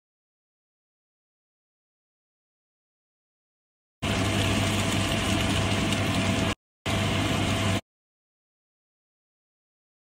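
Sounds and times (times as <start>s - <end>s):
motor hum with hiss: 4.0s - 7.8s.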